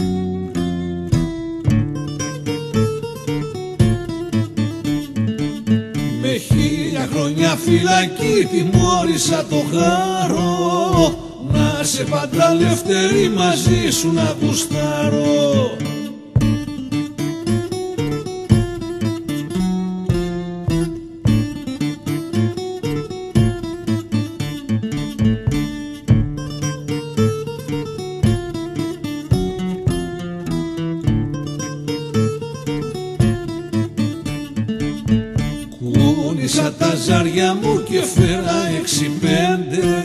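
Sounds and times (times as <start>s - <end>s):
plucked strings picked melody: 0.0s - 40.0s
strummed chords: 0.0s - 40.0s.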